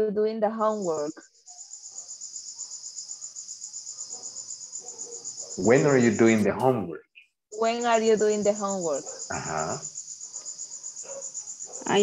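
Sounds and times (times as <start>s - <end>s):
cricket chirping: 0.6s - 6.4s, 7.5s - 12.0s.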